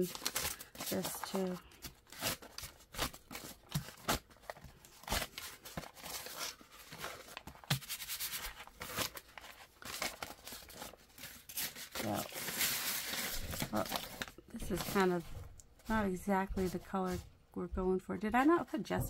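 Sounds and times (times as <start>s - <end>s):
paper crackling and rustling: 0.0s - 17.2s.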